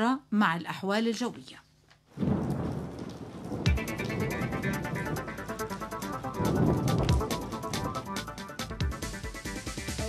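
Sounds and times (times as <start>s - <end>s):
low thunder rumble: 2.2s - 9.1s
rain hiss: 2.2s - 10.0s
music bed with regular beat: 3.6s - 10.0s.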